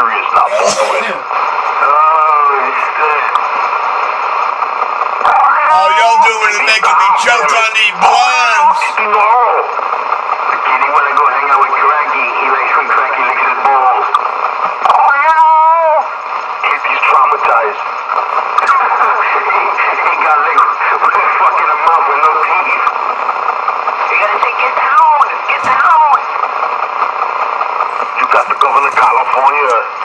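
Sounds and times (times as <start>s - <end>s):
voices talking over one another: 0.4s - 1.3s, 5.3s - 9.2s.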